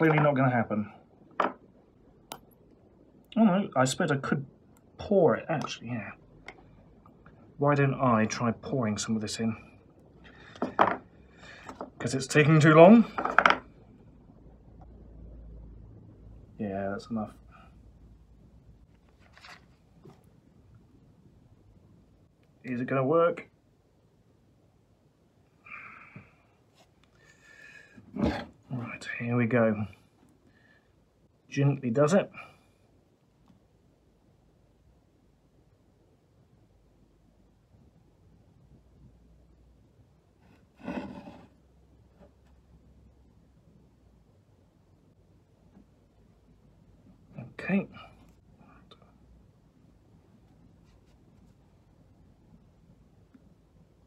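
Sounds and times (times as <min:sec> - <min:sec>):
faint low hum: 0:00.0 - 0:54.0.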